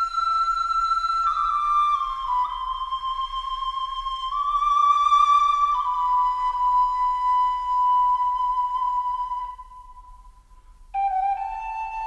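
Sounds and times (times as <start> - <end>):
flute notes: 0.0 - 12.0.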